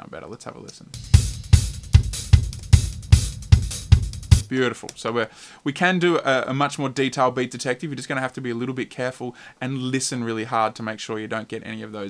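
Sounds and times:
kick drum hits: 0:01.0 - 0:04.4
hi-hats: 0:01.0 - 0:04.5.

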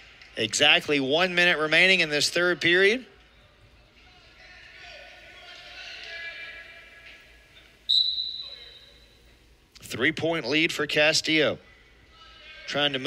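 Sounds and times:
arena crowd noise: 0:00.0 - 0:13.0
referee's whistle blast: 0:07.9 - 0:09.2.

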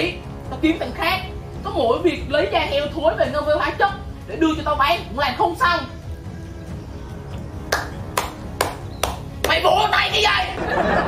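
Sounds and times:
quiet background music: 0:00.0 - 0:11.0
finger snap: 0:07.6 - 0:09.6.

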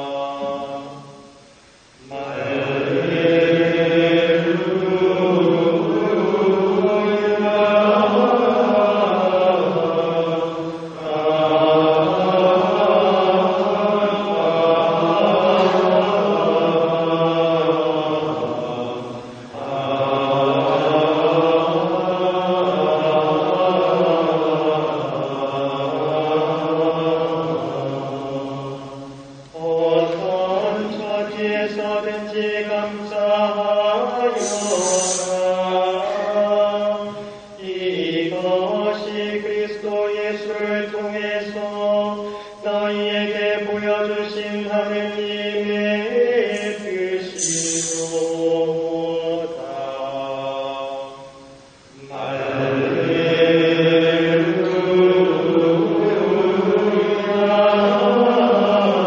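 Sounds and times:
choir chanting in unison: 0:00.0 - 0:01.4, 0:02.0 - 0:59.0.

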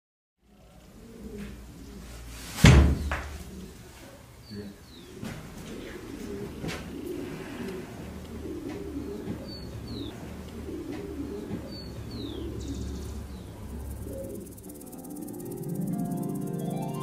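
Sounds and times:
birds chirping: 0:03.0 - 0:17.0.

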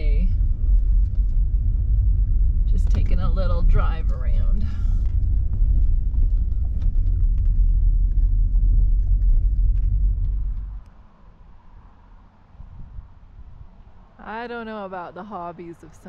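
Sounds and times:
car rumbling on gravel: 0:00.0 - 0:11.1
gravel clicking under tyres: 0:00.0 - 0:12.3.

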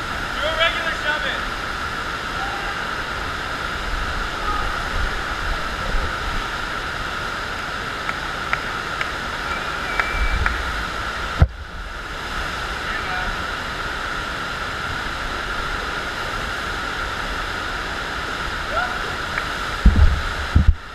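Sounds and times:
rushing water: 0:00.0 - 0:20.9.

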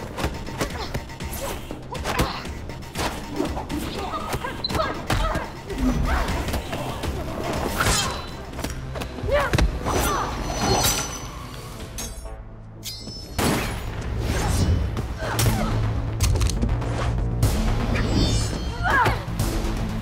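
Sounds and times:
dramatic score: 0:00.0 - 0:20.0.

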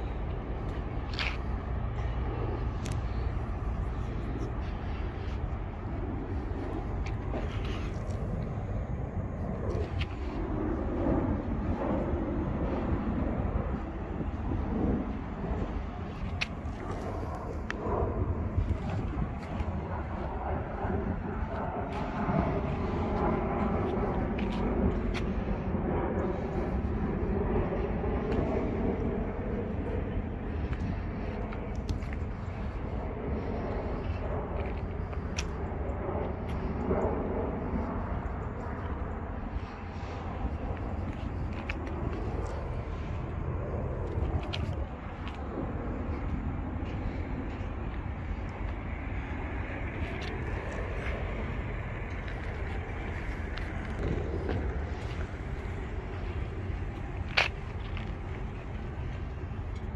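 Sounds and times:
steady low rumble: 0:00.0 - 0:59.9
wavering engine hum: 0:00.0 - 0:59.9.

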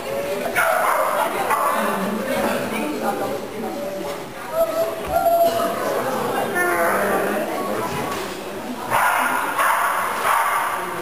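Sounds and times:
people's voices: 0:00.0 - 0:11.0
dog barking: 0:08.9 - 0:10.9.

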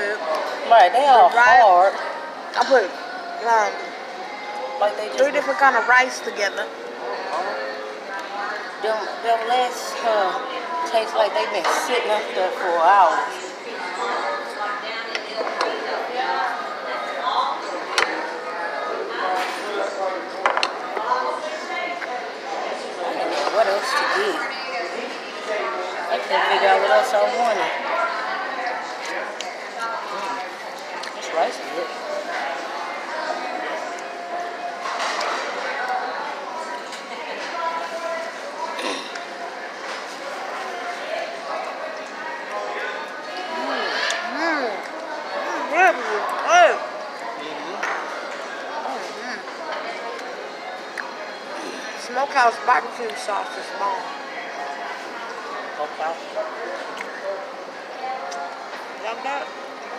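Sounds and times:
restaurant chatter: 0:00.0 - 0:59.9.

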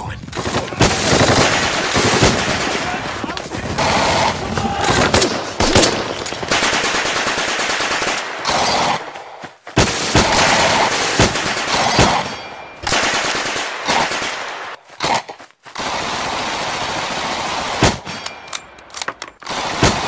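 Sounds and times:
automatic gunfire bursts: 0:00.4 - 0:09.0.

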